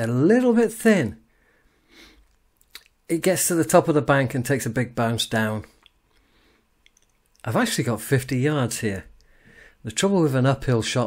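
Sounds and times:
man speaking: 0.0s - 1.2s, 3.1s - 5.8s, 7.4s - 9.2s, 9.8s - 11.0s
faint breath: 1.3s - 2.3s, 6.1s - 6.7s, 9.2s - 9.8s
mouth clicks: 2.2s - 3.0s, 5.6s - 7.5s.

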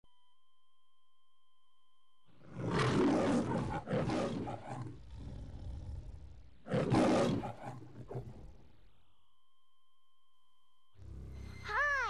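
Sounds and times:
lion growling: 2.4s - 8.9s, 11.0s - 11.7s
lion roaring: 2.4s - 8.9s, 11.0s - 11.6s.

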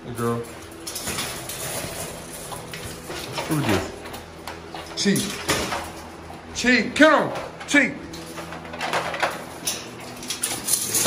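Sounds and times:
dogs clattering in wire crates: 0.2s - 4.1s, 8.1s - 11.0s.

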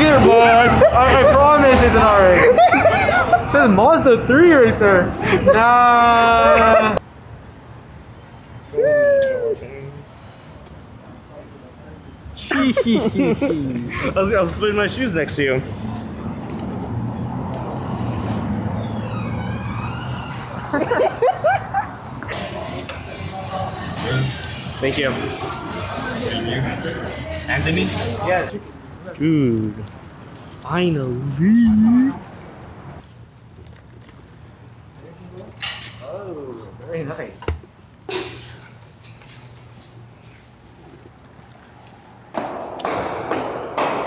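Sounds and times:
city street traffic rumble: 0.0s - 44.0s
rising vocal whoops: 8.7s - 9.8s.

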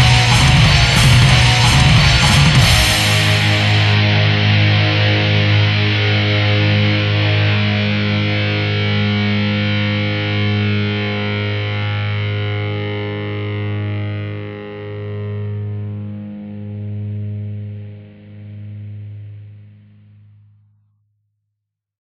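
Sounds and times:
distorted electric guitar chord ringing: 0.0s - 20.4s.

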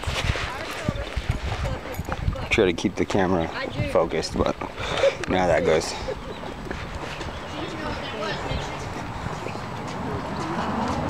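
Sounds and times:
footsteps on concrete: 6.6s - 11.0s.

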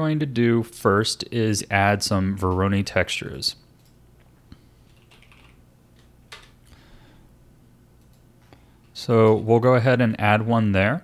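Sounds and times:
faint keyboard typing: 3.8s - 6.8s, 8.0s - 9.4s.

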